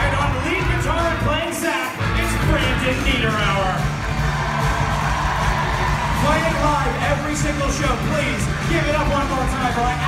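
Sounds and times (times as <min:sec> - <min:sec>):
voices shouting and whooping: 0:04.2 - 0:07.4.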